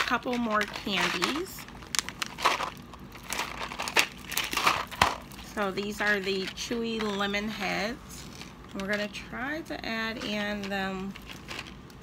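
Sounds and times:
plastic packaging crinkling: 0:00.0 - 0:07.3, 0:10.1 - 0:12.0.

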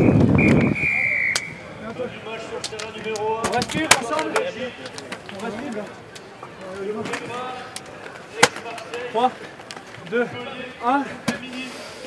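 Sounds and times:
men talking: 0:01.6 - 0:12.0.

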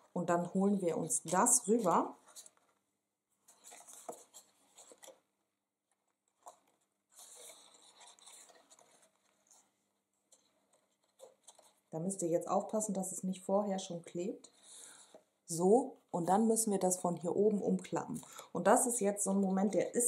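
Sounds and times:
cardstock rustling and scraping: 0:00.4 - 0:02.8, 0:03.4 - 0:05.3, 0:06.3 - 0:11.9.

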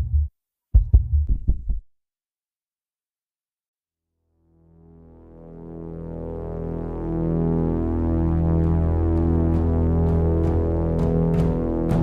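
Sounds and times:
deep bass throb in quick beats: 0:00.0 - 0:01.9, 0:08.7 - 0:12.0.

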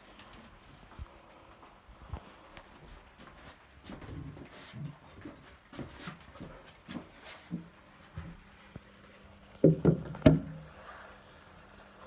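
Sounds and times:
faint steady hum: 0:00.0 - 0:12.0
loud knocks: 0:09.6 - 0:10.6.

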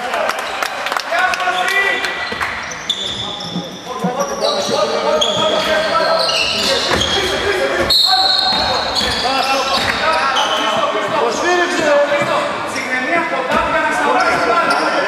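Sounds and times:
sneakers squeaking: 0:01.5 - 0:15.0.

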